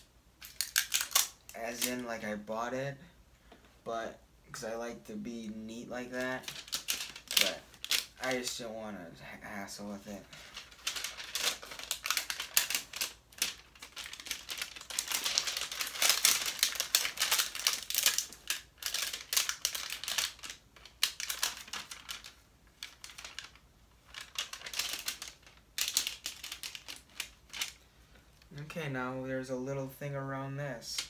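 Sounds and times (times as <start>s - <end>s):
plastic wrap crinkling: 0.0s - 2.2s, 6.0s - 8.6s, 10.0s - 27.8s.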